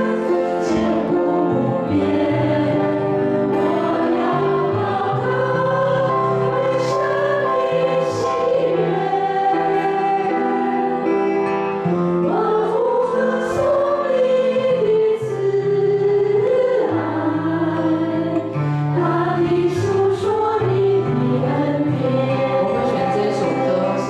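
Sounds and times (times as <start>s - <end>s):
women singing praise song: 0.0s - 11.1s, 12.3s - 24.0s
acoustic guitar: 0.0s - 24.0s
piano: 0.0s - 24.0s.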